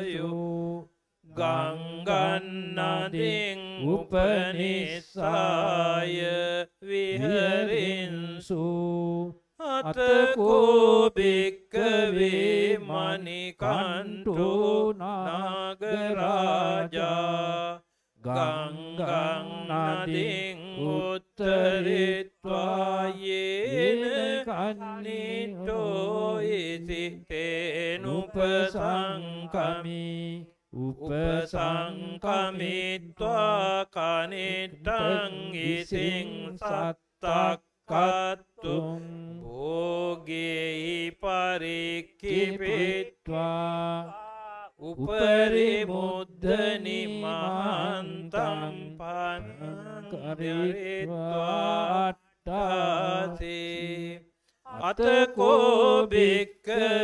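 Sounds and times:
monks chanting into microphones: 1.4s - 57.0s.

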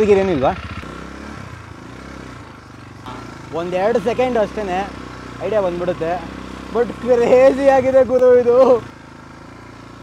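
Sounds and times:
quad bike engine idling: 0.0s - 10.0s.

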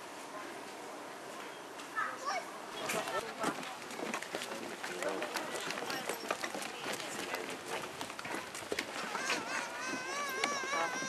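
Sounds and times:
people talking: 0.3s - 11.0s
footsteps walking: 2.9s - 11.0s.

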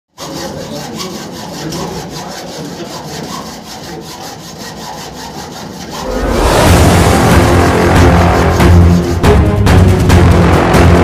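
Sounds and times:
hacksaw cutting metal: 0.2s - 6.1s.

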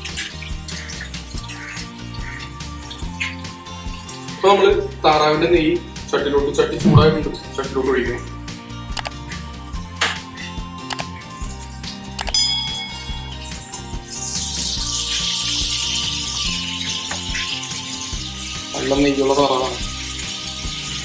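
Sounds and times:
water pouring into pot: 0.0s - 4.4s, 12.7s - 21.0s
background music: 0.0s - 21.0s.

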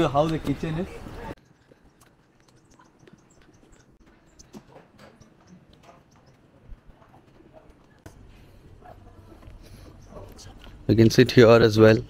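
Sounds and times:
faint birds calling: 0.0s - 11.2s
footsteps on wooden decking: 0.2s - 10.8s.

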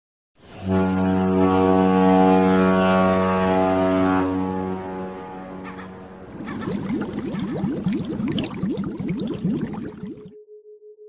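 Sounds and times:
low horn-like tone: 0.4s - 6.3s
water bubbling: 6.2s - 10.3s.

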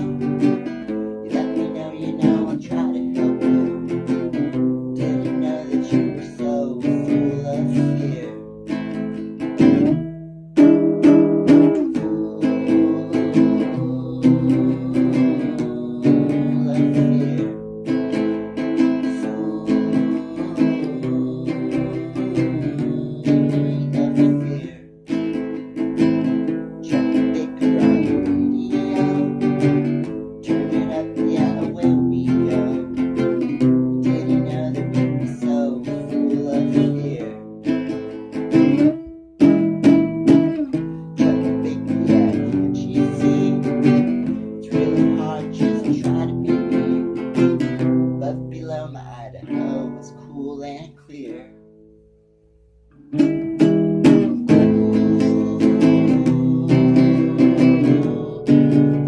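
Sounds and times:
strummed string instrument chords: 0.0s - 59.0s.

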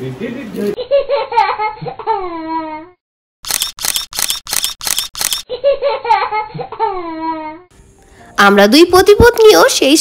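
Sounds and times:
camera shutter clicking rapidly: 3.4s - 5.5s.

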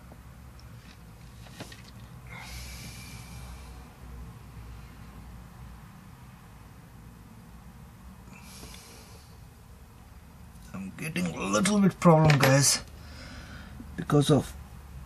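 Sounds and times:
man exhaling hard through nose: 2.2s - 3.9s, 8.3s - 9.4s, 13.0s - 13.8s.

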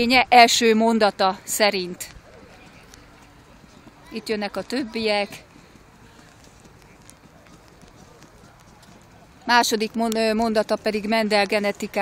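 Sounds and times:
hoofbeats on pavement: 2.0s - 12.0s.

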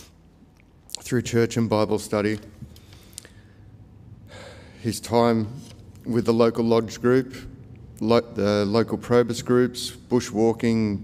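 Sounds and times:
man speaking into microphone: 0.9s - 2.6s, 4.8s - 11.0s.

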